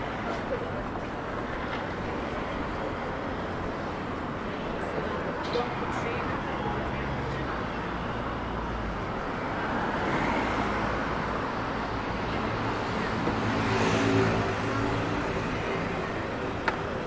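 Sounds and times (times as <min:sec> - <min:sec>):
hum of traffic: 0:00.0 - 0:17.0.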